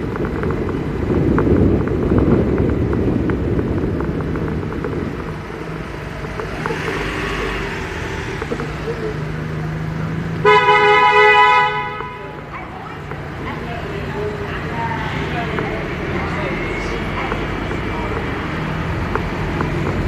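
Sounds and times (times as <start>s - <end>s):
car road rumble: 0.0s - 20.0s
vehicle passing close by: 1.1s - 12.0s
car horn: 10.4s - 12.5s.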